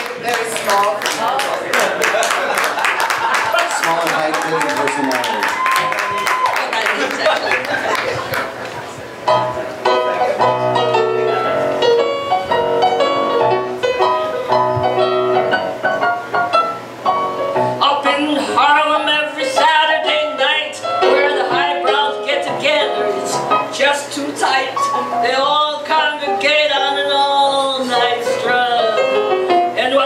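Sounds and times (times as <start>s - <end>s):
piano playing: 0.0s - 30.0s
person singing: 17.8s - 30.0s.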